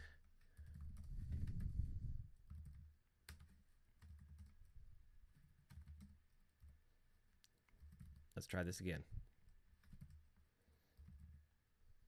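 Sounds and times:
computer keyboard typing: 0.2s - 1.7s, 2.4s - 11.5s.

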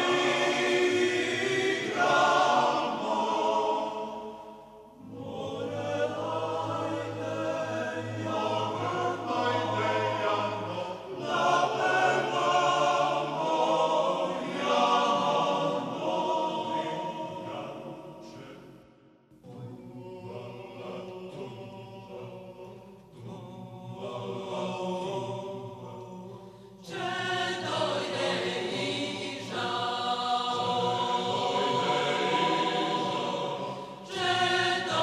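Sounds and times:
choir singing: 0.0s - 35.0s.

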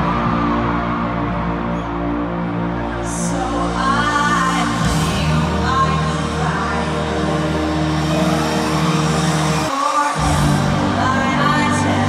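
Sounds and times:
heavy sustained bass notes: 0.0s - 12.0s
live pop concert music: 0.0s - 12.0s.

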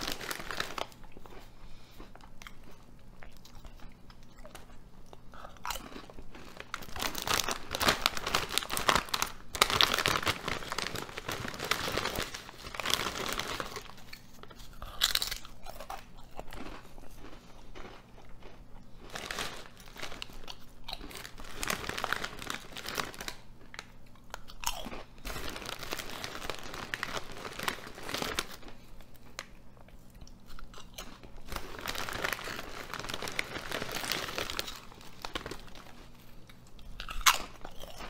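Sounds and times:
potato chips crunched: 0.0s - 38.0s.

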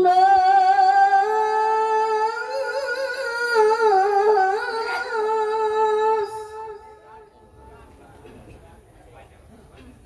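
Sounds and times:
woman reciting melodically: 0.0s - 7.4s.

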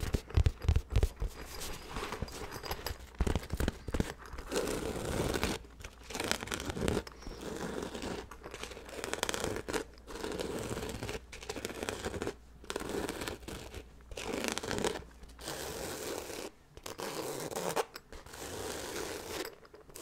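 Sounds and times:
nails scratching fabric bag: 0.0s - 20.0s.

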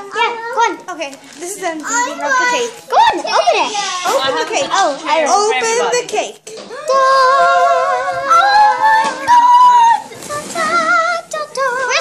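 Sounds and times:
wavering high ooh of delight: 6.7s - 11.2s.

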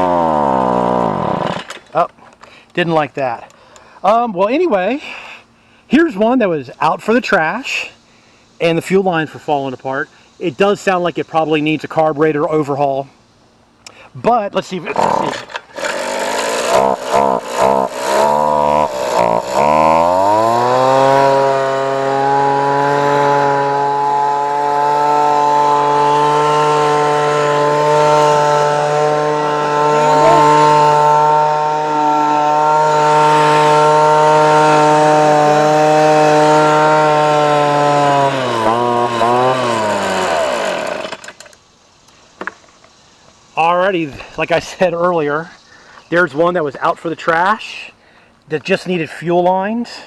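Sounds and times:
leaf blower engine running: 0.0s - 2.6s, 14.7s - 41.5s.

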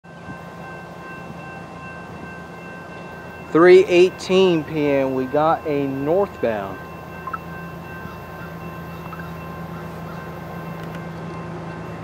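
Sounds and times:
distant train rumble: 0.0s - 12.0s
steady high tones: 0.1s - 12.0s.

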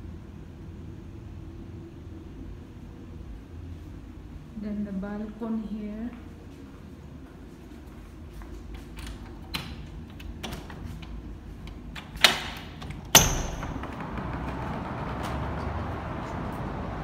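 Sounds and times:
sharp door clacks: 9.0s - 16.3s
door latch clicks: 11.7s - 15.4s
distant traffic: 12.8s - 17.0s.

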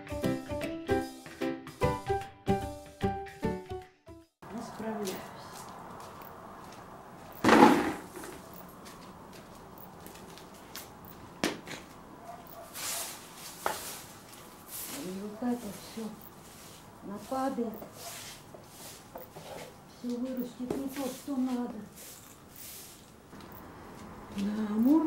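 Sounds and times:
music: 0.0s - 4.4s
broom scraping on concrete: 7.4s - 8.4s, 12.6s - 19.8s, 20.7s - 23.2s.

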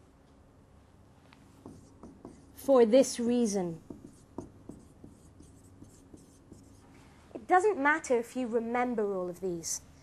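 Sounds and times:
marker writing on whiteboard: 1.5s - 2.7s, 3.8s - 6.9s.

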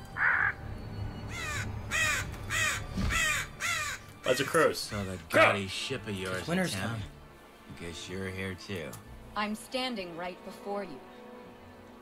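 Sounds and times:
crow cawing: 0.2s - 0.6s, 1.3s - 5.4s.

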